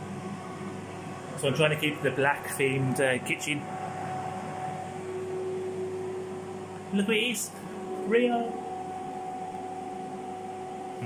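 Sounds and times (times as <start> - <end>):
air fryer fan whirring: 0.0 - 11.0.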